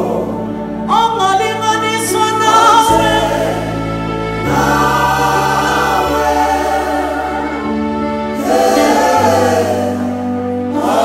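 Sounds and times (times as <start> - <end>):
keyboards: 0.0 - 11.0
backing vocals: 8.4 - 11.0
woman singing gospel lead: 8.4 - 11.0.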